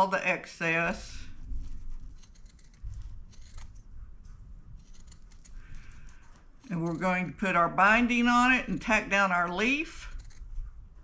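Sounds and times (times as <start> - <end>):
scissors snipping through fabric: 1.5 - 3.9, 4.7 - 7.4, 9.4 - 10.7.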